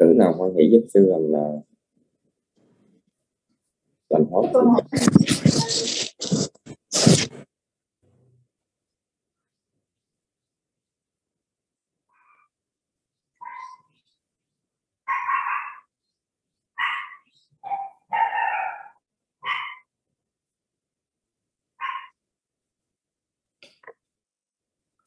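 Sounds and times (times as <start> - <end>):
dog barking: 15.1 - 15.9, 16.8 - 19.9, 21.8 - 22.2.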